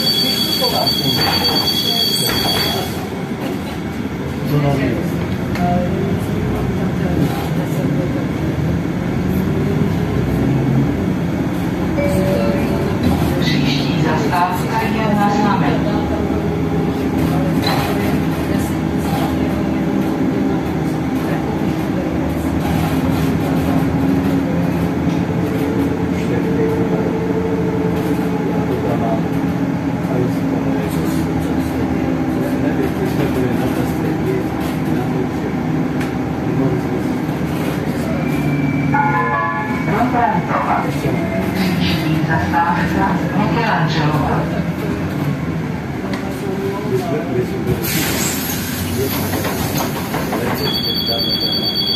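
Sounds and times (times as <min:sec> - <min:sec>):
bus cabin rumble: 0:00.8 - 0:50.7.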